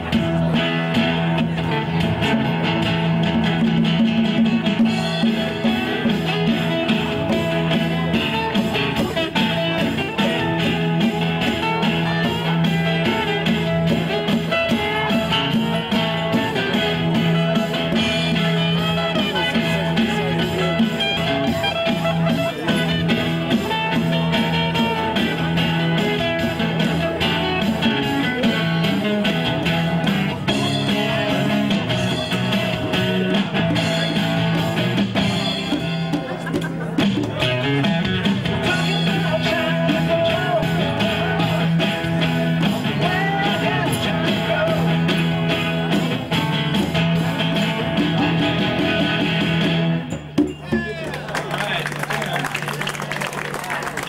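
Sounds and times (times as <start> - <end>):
guitars playing: 0.0 - 51.8
congas struck by hand: 50.1 - 51.1.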